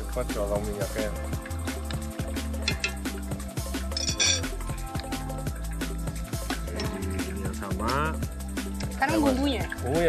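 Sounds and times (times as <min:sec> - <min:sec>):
background music: 0:00.0 - 0:10.0
sharp clinks: 0:03.9 - 0:04.6.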